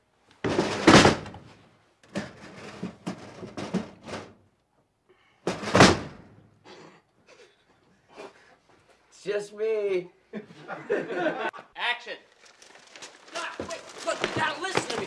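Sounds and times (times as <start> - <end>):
thumps and knocks: 0.4 - 1.4, 2.0 - 4.3, 5.5 - 6.2
rustling: 12.2 - 15.0.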